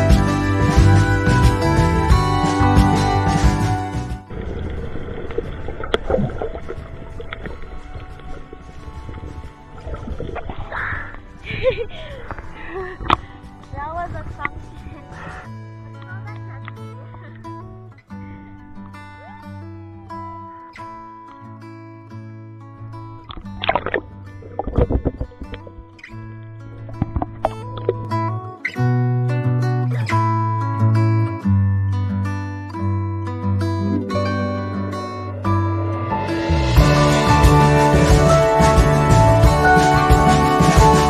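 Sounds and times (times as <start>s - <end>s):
acoustic guitar music: 0.0s - 41.0s
gurgling air bubbles: 4.3s - 13.4s, 23.3s - 25.9s
muffled underwater sound: 4.3s - 15.4s, 23.3s - 26.0s
faint music: 4.5s - 17.8s.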